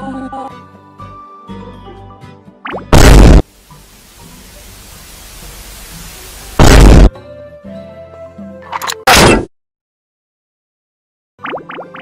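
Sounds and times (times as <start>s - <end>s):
static hiss: 2.9s - 7.1s.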